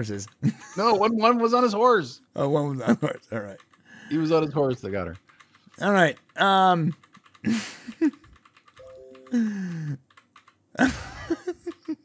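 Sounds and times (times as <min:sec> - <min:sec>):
man laughing: 0:00.4 - 0:01.2, 0:02.8 - 0:03.3, 0:07.4 - 0:08.2, 0:10.8 - 0:12.0
computer keyboard typing: 0:02.9 - 0:12.0.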